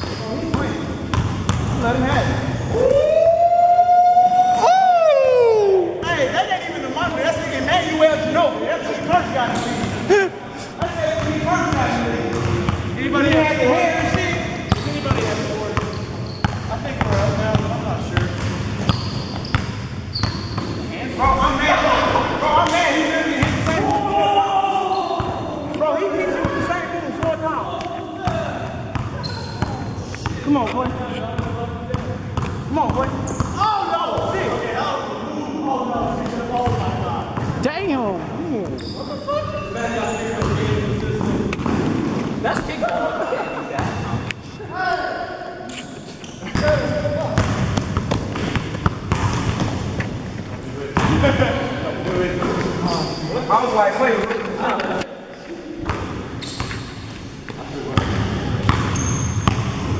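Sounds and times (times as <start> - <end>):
basketball bouncing on court: 0.0 - 2.4, 10.8 - 20.9, 23.4 - 24.0, 28.2 - 33.6, 46.5 - 50.2, 58.0 - 59.9
players talking indistinctly: 4.7 - 18.7, 20.8 - 47.7.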